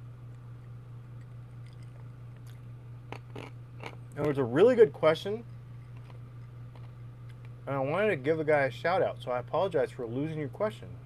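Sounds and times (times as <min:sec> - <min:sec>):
steady low hum: 0:00.0 - 0:11.0
person sipping and swallowing: 0:01.2 - 0:04.0.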